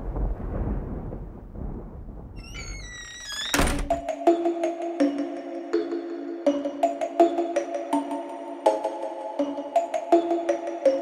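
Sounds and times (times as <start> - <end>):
low rumble: 0.0 - 4.0
music: 3.3 - 11.0.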